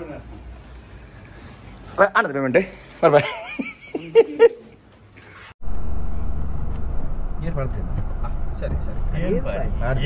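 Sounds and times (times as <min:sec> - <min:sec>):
car engine and road noise: 0:05.6 - 0:10.0.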